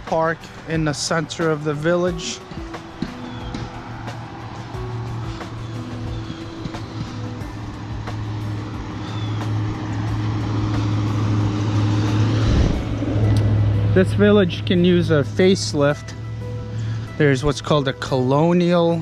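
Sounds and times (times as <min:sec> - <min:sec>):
car passing: 0:00.0 - 0:17.3
background music: 0:00.0 - 0:19.0.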